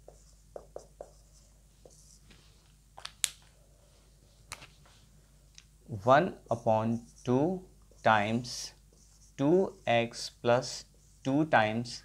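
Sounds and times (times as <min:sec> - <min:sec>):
marker pen on whiteboard: 0:00.0 - 0:03.4, 0:06.2 - 0:12.0.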